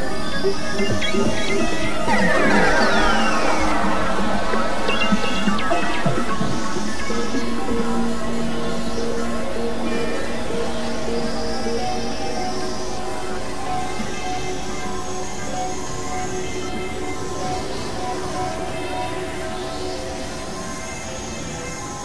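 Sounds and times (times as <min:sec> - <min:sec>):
synthesizer drone tones: 0:00.0 - 0:20.2.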